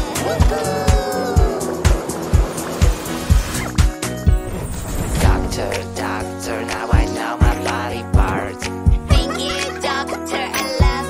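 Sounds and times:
upbeat instrumental music: 0:00.0 - 0:11.0
falling sliding tone: 0:04.3 - 0:06.4.

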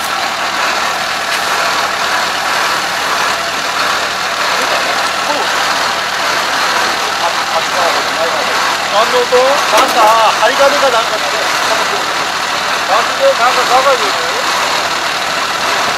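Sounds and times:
combine harvester running: 0:00.0 - 0:15.9.

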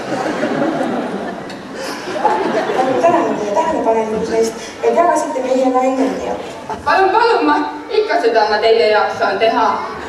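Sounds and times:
woman talking: 0:02.8 - 0:10.0.

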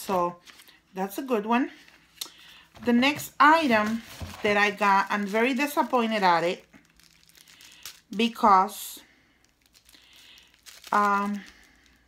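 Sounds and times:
plastic packaging crinkling: 0:03.3 - 0:12.0.

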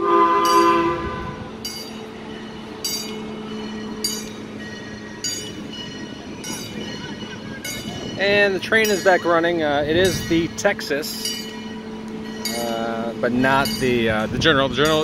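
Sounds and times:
steam locomotive whistle: 0:00.0 - 0:01.6
locomotive bell ringing: 0:00.0 - 0:15.0.

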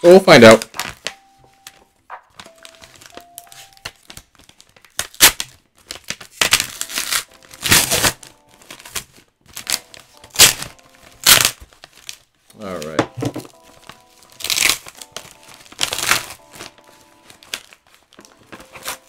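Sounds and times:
packaging crinkling and tearing: 0:00.1 - 0:19.0.

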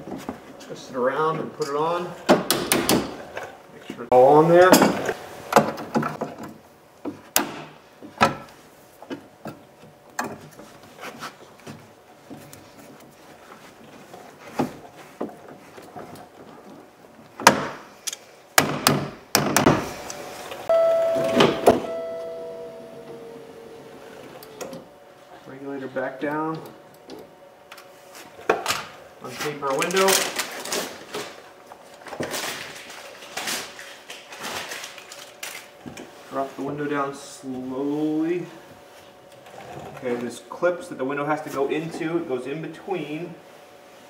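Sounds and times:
brief ringing tone: 0:20.7 - 0:24.4.

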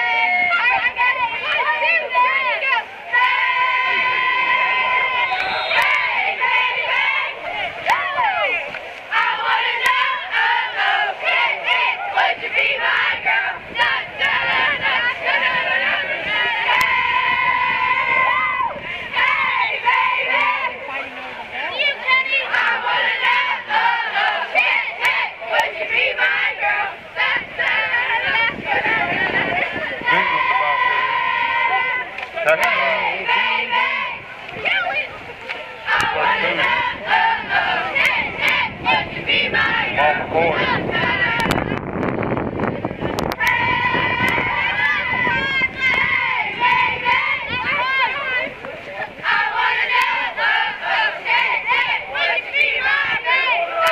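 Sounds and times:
cheerleaders shouting a cheer: 0:00.0 - 0:41.7, 0:42.8 - 0:53.9.

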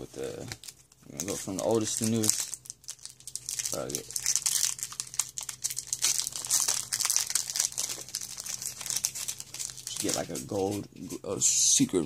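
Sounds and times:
foil wrapper crinkling and tearing: 0:00.0 - 0:10.9.

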